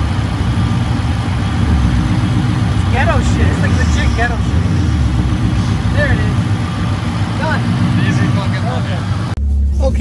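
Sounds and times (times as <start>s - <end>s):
low hum: 0.0s - 10.0s
vehicle engine idling: 0.0s - 10.0s.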